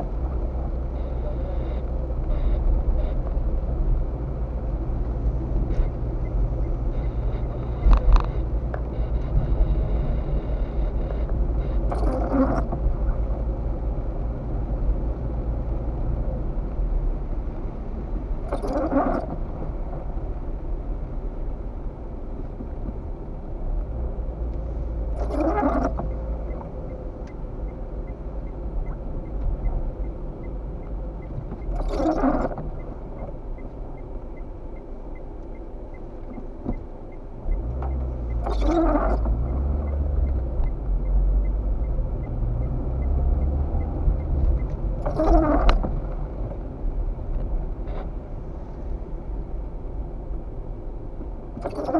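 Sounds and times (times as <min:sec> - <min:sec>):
road and engine rumble: 0:00.0 - 0:51.9
windscreen wipers swishing: 0:00.0 - 0:51.9.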